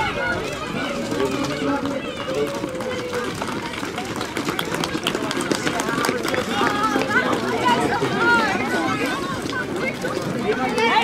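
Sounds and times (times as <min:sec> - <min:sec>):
runners footsteps on brick: 0:00.0 - 0:11.0
voices: 0:00.0 - 0:11.0.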